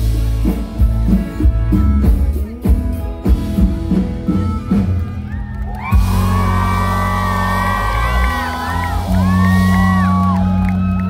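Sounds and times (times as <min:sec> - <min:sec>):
crowd whooping and shouting: 0:05.1 - 0:11.0.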